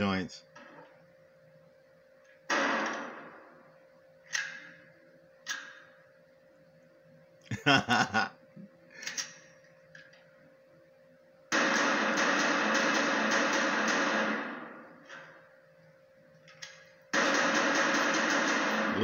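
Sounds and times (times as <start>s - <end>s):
film soundtrack from tv: 0.0s - 7.8s, 8.4s - 19.0s
low steady hum: 0.0s - 19.0s.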